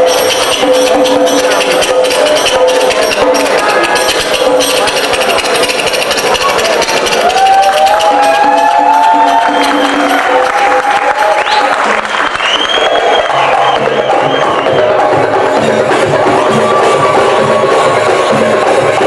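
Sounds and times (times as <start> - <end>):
hand drum rhythm: 0.0 - 12.3, 13.2 - 19.0.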